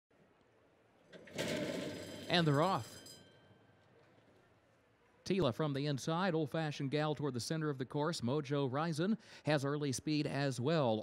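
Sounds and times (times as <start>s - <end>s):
starting gate clattering open: 1.1s - 3.3s
starting bell ringing: 1.4s - 3.7s.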